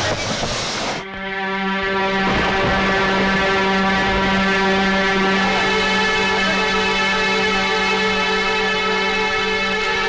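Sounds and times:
horn-like drone: 0.0 - 10.0.

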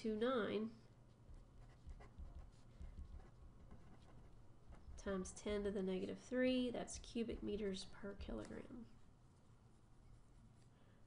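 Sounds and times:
low room hum: 0.0 - 11.0
pen scratching on paper: 1.3 - 5.7.

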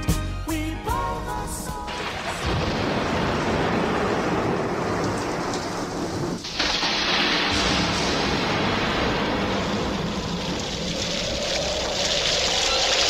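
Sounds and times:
soul music held notes: 0.0 - 2.0
rain: 1.9 - 13.0
thunder: 1.9 - 13.0.

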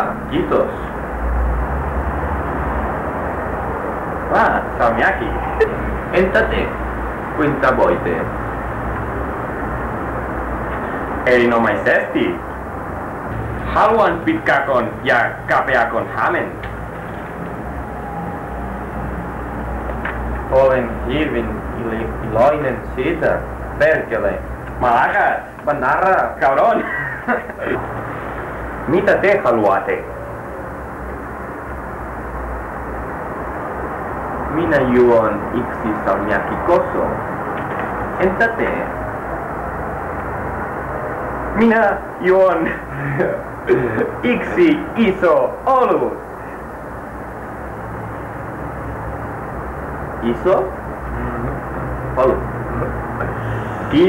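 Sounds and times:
low rumble and hiss: 0.0 - 54.0.

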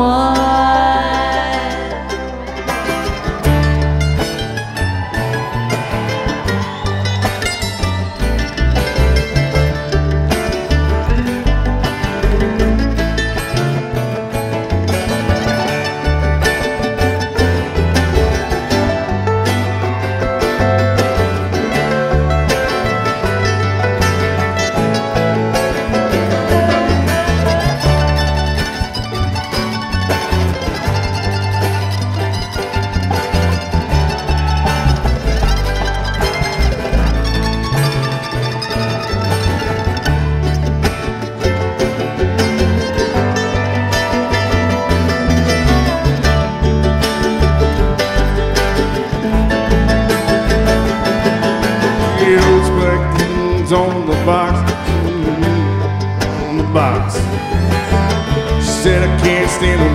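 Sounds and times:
banjo picking: 0.0 - 59.9
bluegrass band playing: 0.0 - 59.9
upright bass line: 0.0 - 59.9.

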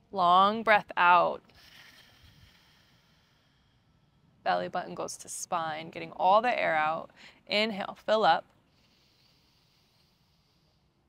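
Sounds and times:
faint breathy exhale: 1.5 - 4.2, 8.7 - 10.9.

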